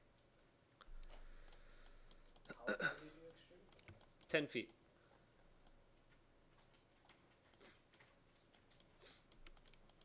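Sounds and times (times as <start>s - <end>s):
mouse and keyboard clicks: 1.0s - 2.6s, 3.3s - 4.8s, 6.8s - 10.0s.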